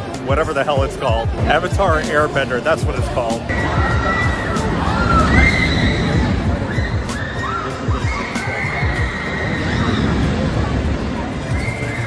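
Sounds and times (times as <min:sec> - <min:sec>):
background music: 0:00.0 - 0:12.0
riders screaming: 0:03.5 - 0:10.4.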